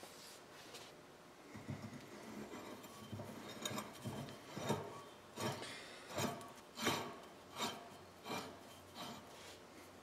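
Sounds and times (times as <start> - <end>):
metal rasping: 1.5 - 9.6.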